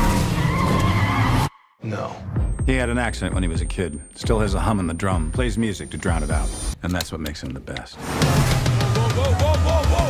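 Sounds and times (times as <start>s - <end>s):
car tyres squealing: 0.0s - 1.7s.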